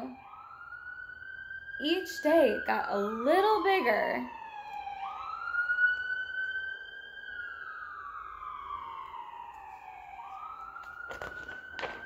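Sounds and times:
siren wailing: 0.0s - 12.0s
book page turning: 9.5s - 12.0s.

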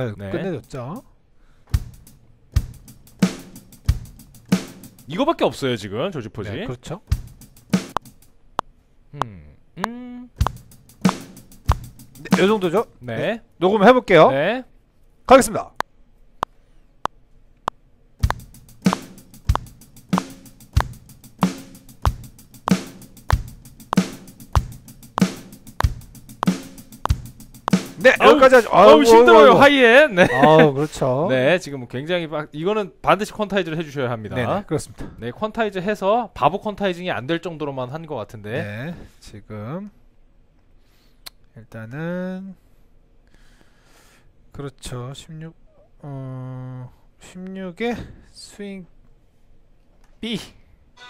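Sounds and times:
kick drum: 1.8s - 2.0s, 7.1s - 7.4s, 10.4s - 12.5s, 18.2s - 21.1s, 22.0s - 28.4s
hi-hat ticks: 1.8s - 5.1s, 7.2s - 8.3s, 9.8s - 13.0s, 18.2s - 28.6s
metronome clicks: 7.9s - 8.1s, 9.2s - 12.3s, 18.2s - 21.0s, 22.0s - 28.0s
snare drum hits: 10.4s - 12.7s, 18.2s - 29.3s.

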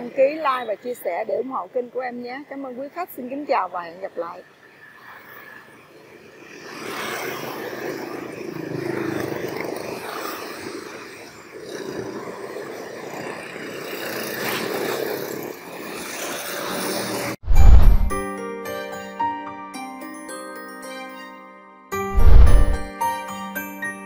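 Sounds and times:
motorbikes and scooters passing: 0.0s - 18.1s.

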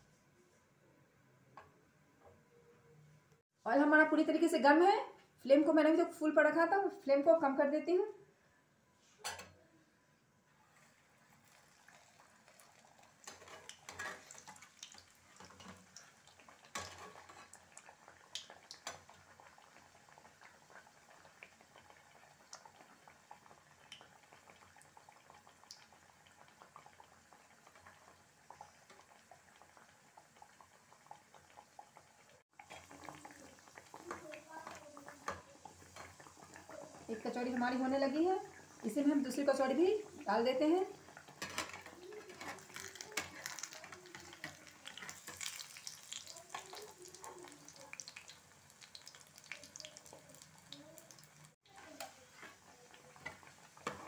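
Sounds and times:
deep-frying sizzle with crackles: 10.4s - 54.0s.

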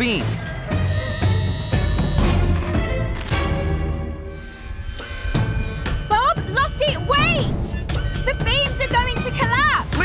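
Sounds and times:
cartoon soundtrack music: 0.0s - 10.0s.

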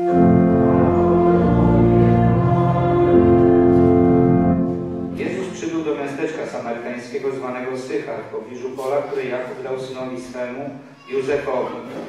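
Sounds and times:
voices singing: 0.0s - 5.7s
organ chords: 0.0s - 6.3s.

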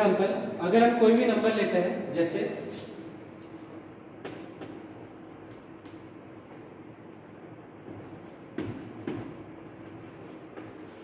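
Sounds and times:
steady background hum: 0.0s - 11.0s
chalk strokes on blackboard: 7.9s - 11.0s.

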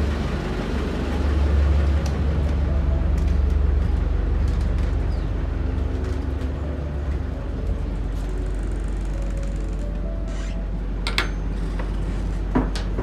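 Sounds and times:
generator engine droning: 0.0s - 13.0s.

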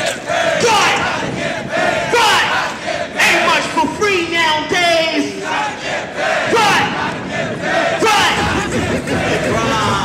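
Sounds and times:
men shouting and yelling: 0.1s - 10.0s.

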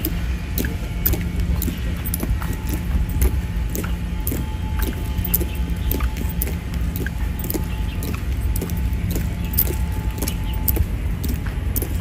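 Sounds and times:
marching boots on stone: 0.0s - 12.0s
steady low rumble: 0.0s - 12.0s.

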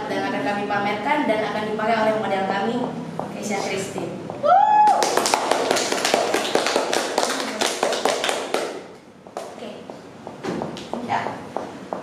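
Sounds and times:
people clapping: 4.7s - 9.6s.

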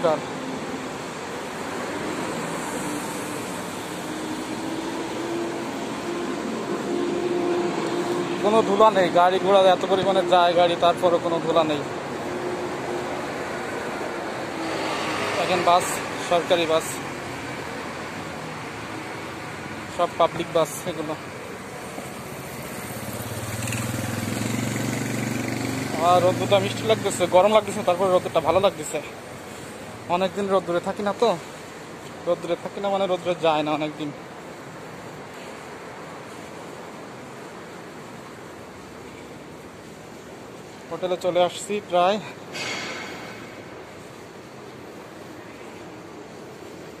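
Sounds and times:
city street traffic: 0.0s - 47.0s.

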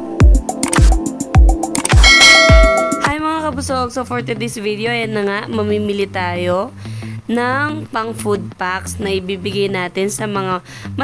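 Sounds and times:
electronic intro music: 0.5s - 3.1s
bright bell chime: 2.0s - 3.1s.

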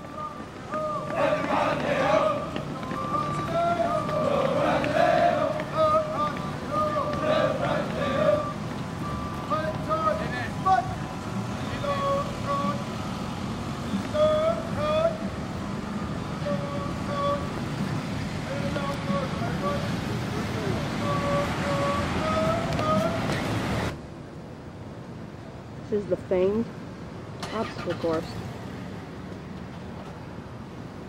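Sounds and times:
recruits marching: 0.0s - 24.0s
outdoor noise: 0.0s - 31.0s.

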